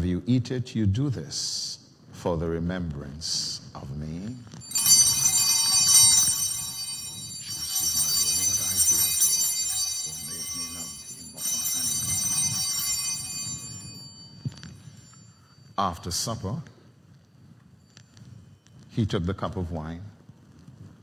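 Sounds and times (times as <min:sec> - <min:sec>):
small altar bells ringing: 0:04.3 - 0:19.2.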